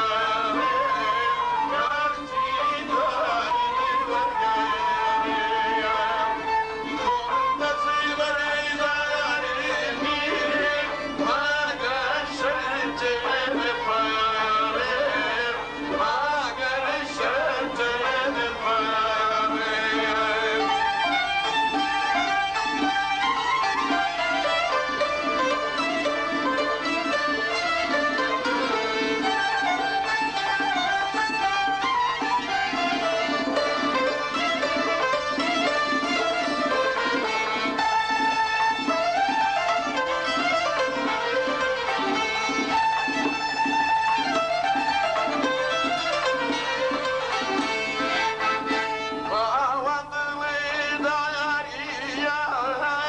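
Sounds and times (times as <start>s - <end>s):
bowed violin melody: 0.0s - 52.7s
accordion: 0.0s - 53.0s
folk music with sliding notes: 0.0s - 53.0s
plucked qanun: 0.0s - 53.0s.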